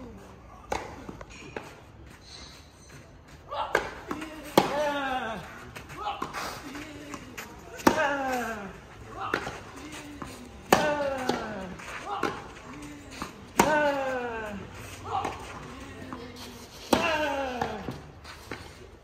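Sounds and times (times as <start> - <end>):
racket hitting tennis ball: 3.7 - 5.0, 7.1 - 8.5, 9.2 - 14.1, 16.8 - 18.6.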